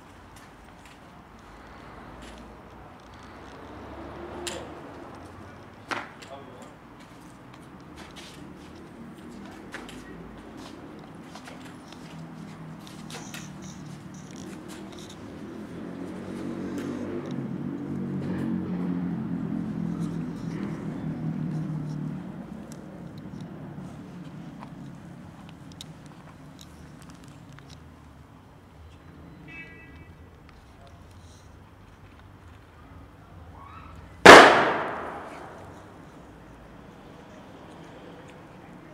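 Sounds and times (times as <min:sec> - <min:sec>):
loud bang with echo: 0:34.3 - 0:35.7.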